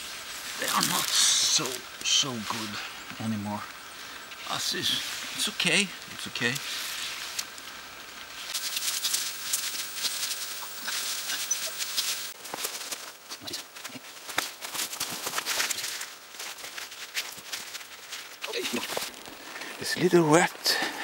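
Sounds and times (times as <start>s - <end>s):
twigs and brush crackling: 0.0s - 21.0s.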